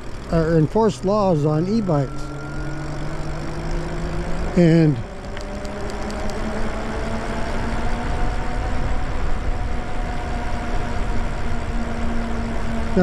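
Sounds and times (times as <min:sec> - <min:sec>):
electric motor whine: 0:00.0 - 0:13.0.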